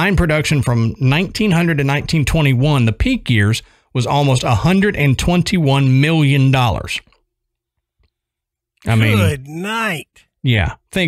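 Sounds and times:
man speaking: 8.9 - 10.2.

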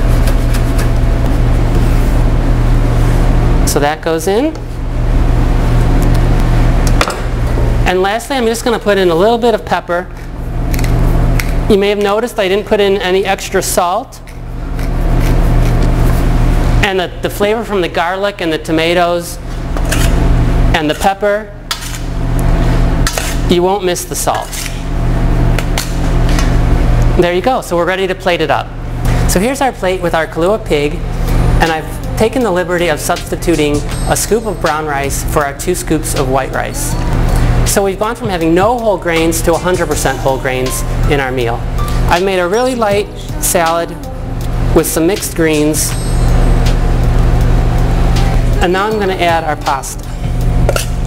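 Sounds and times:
loud steady low hum: 0.0 - 51.0
noisy rumble: 0.0 - 51.0.

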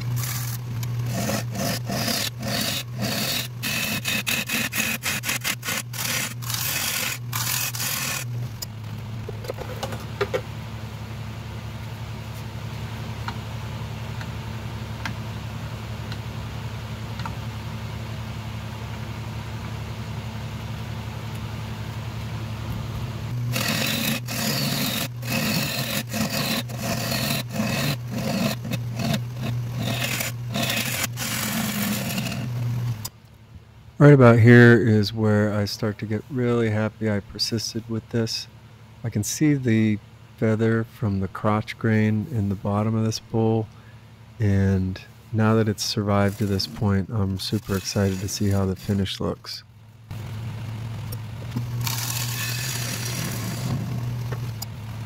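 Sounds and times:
gouge scraping wood on lathe: 0.0 - 8.4, 23.3 - 33.0, 46.0 - 49.0, 51.7 - 54.6
lathe humming: 0.0 - 9.3, 23.3 - 33.1, 50.1 - 54.9.

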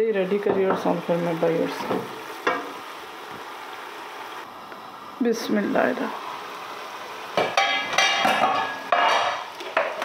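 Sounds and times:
pot simmering with bubbling hiss: 0.0 - 10.0.

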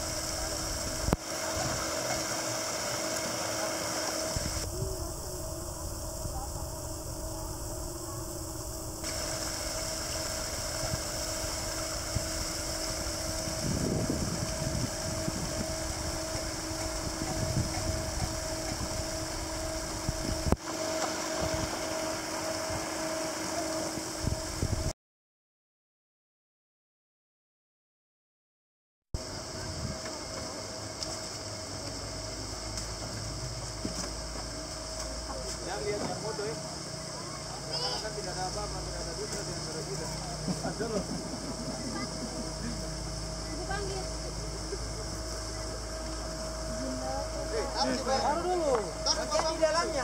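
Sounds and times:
paddlewheel aerator motor hum: 0.0 - 24.9, 29.2 - 50.0.

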